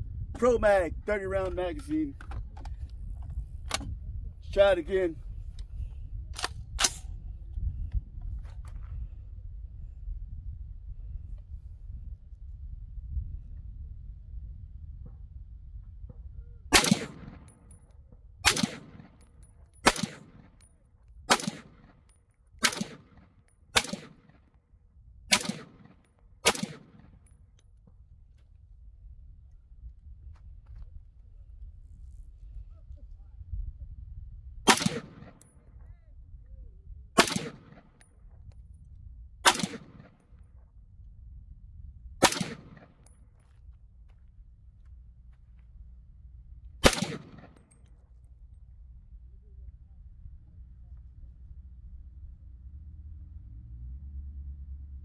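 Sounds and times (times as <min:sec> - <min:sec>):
low rumble: 0:00.0 - 0:55.0
rifle firing single shots: 0:16.7 - 0:17.6, 0:18.4 - 0:19.2, 0:19.8 - 0:20.6, 0:21.3 - 0:22.0, 0:22.6 - 0:24.4, 0:25.3 - 0:27.2, 0:34.7 - 0:35.5, 0:37.2 - 0:38.0, 0:39.4 - 0:40.2, 0:42.2 - 0:43.1, 0:46.8 - 0:47.8.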